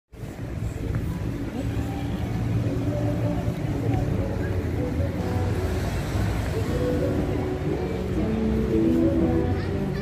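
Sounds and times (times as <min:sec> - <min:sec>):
indistinct voices: 0:00.2 - 0:10.0.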